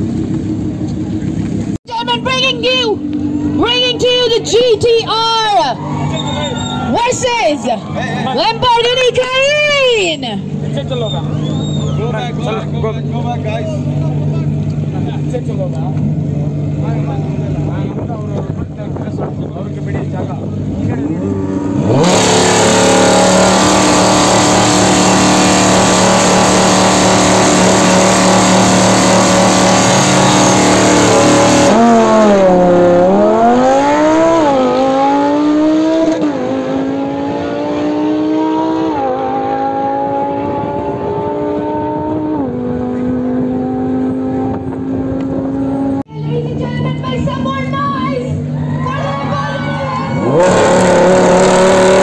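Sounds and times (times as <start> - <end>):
sports car engine revving: 8.3 - 46.0, 50.2 - 52.0.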